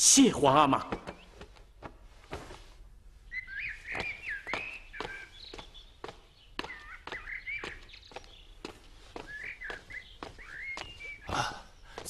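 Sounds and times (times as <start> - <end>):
songbird warbling: 3.3 - 12.0
sharp footsteps: 3.6 - 12.0.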